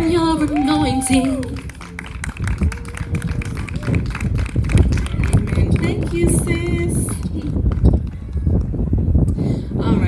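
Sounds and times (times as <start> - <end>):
small audience clapping: 0.4 - 8.7.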